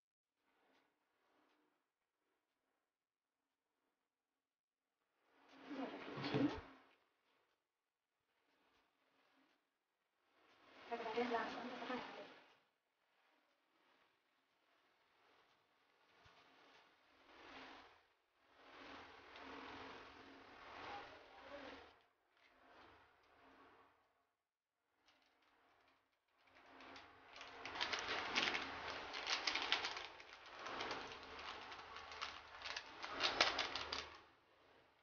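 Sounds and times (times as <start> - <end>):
rustling and crinkling of sprinkling: 25.1 - 34.2.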